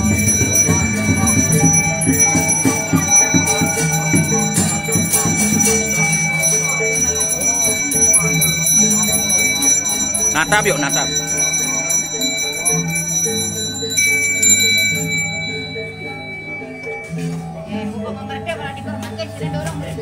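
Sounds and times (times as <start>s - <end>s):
bell ringing: 0.0s - 17.9s
crowd voices: 0.0s - 20.0s.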